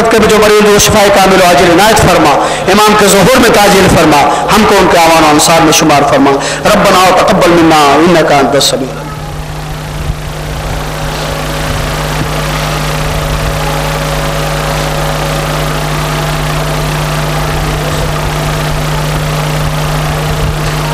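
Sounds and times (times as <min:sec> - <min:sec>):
mechanical hum with low drone: 0:00.0 - 0:20.9.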